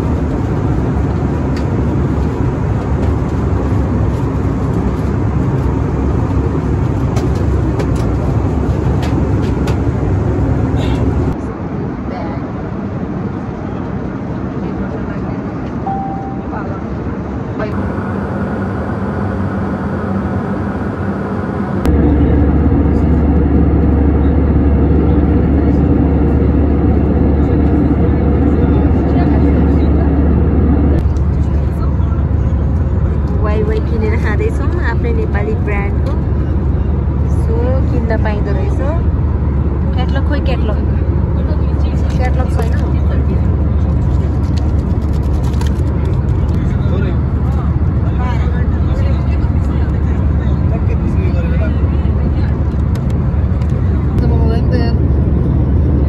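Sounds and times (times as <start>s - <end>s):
airliner cabin rumble: 0.0s - 56.0s.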